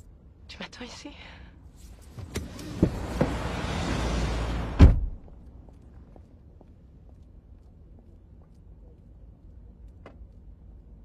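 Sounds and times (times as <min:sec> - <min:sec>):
car driving noise from inside: 0:02.1 - 0:05.5
dull thumps in car: 0:02.2 - 0:03.5.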